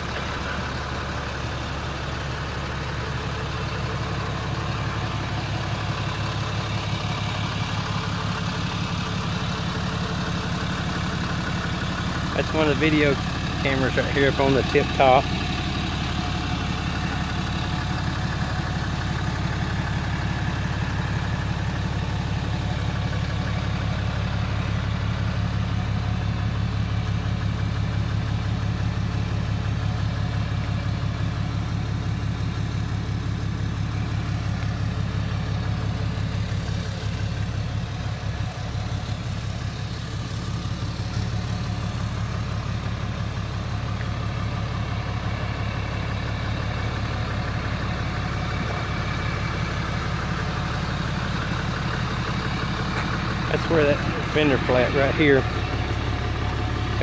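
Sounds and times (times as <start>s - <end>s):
tow truck engine idling: 0.0s - 57.0s.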